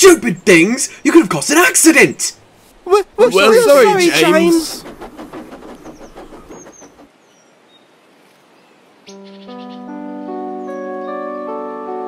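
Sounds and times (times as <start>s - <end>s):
birds chirping: 0.0s - 11.8s
train clatter: 3.6s - 7.2s
soft keyboard music: 9.1s - 12.0s.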